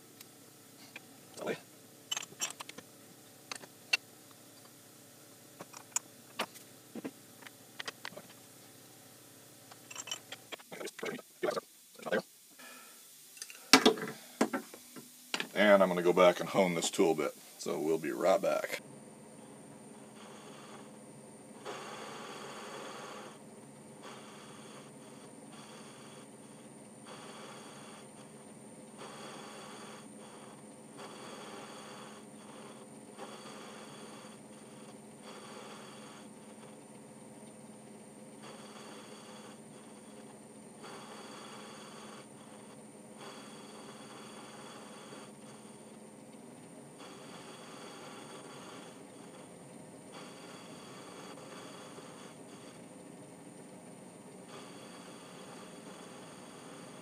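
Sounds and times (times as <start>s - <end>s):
hiss of lathe cutting: 13.8s - 18.8s, 20.0s - 21.0s, 21.6s - 36.6s, 38.4s - 40.2s, 40.8s - 45.9s, 47.0s - 49.5s, 50.1s - 52.9s, 54.4s - 57.0s
metal lathe humming: 21.6s - 53.7s.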